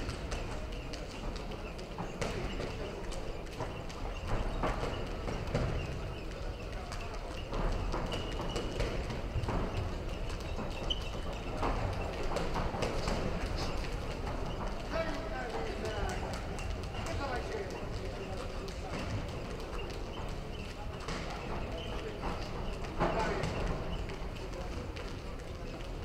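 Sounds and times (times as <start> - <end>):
murmur of sports hall: 0.0 - 26.0.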